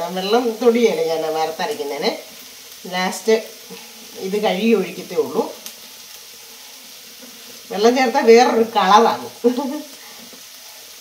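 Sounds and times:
food sizzling in a wok: 0:00.0 - 0:11.0.

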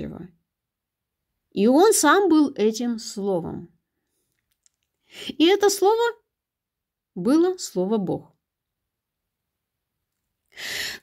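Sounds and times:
intake of breath: 0:10.5 - 0:11.0.

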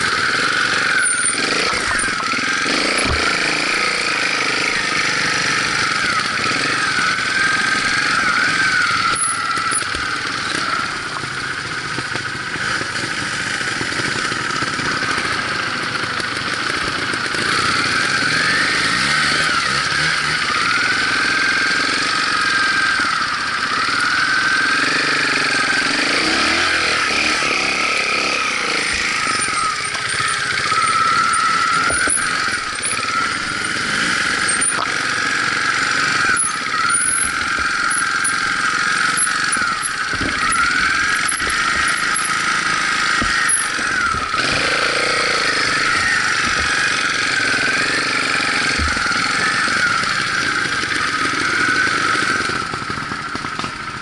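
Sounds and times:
motorcycle engines revving at low speed: 0:00.0 - 0:54.0.

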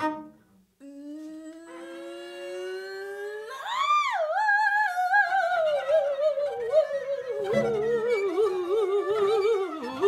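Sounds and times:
woman humming and singing: 0:00.8 - 0:10.0.

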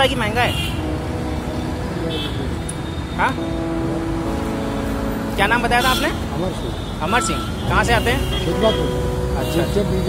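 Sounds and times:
street traffic rumble: 0:00.0 - 0:10.0
vehicle engine hum: 0:00.0 - 0:10.0.

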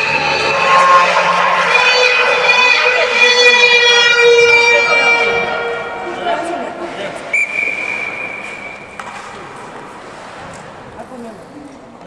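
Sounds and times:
referee's whistle blast: 0:07.3 - 0:09.0.

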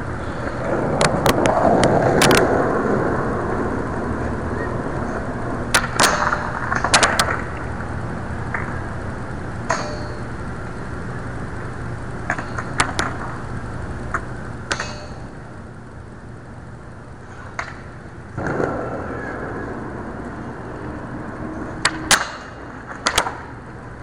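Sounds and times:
skateboard wheels rolling on concrete: 0:00.0 - 0:24.0
skateboard clacks: 0:00.4 - 0:02.9, 0:04.3 - 0:07.8, 0:08.4 - 0:08.8, 0:12.2 - 0:13.4, 0:17.5 - 0:20.3, 0:21.8 - 0:23.6
skateboard clattering on ground: 0:05.8 - 0:07.6, 0:18.4 - 0:19.6.

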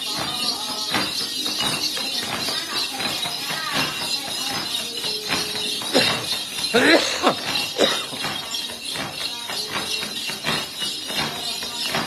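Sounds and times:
small bells jingling: 0:00.0 - 0:12.0.

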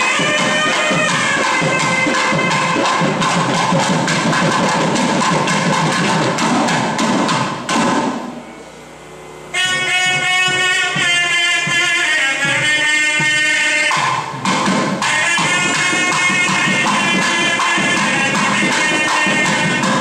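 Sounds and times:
reedy wind instrument melody: 0:00.0 - 0:04.4, 0:08.4 - 0:20.0
drum strokes: 0:00.0 - 0:08.5, 0:09.5 - 0:20.0.

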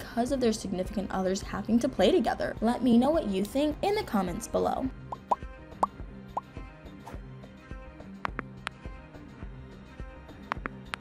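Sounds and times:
soft background music: 0:00.0 - 0:11.0
rising pop sound effects: 0:05.1 - 0:05.4.

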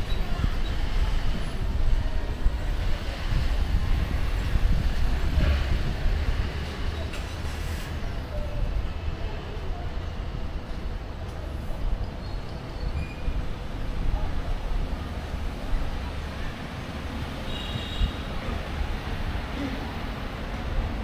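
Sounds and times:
low rumble of vehicles: 0:00.0 - 0:21.0
street hum: 0:00.0 - 0:21.0.

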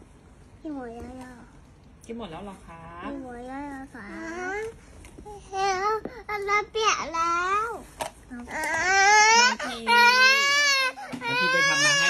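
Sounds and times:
toddler crying: 0:08.5 - 0:12.0.

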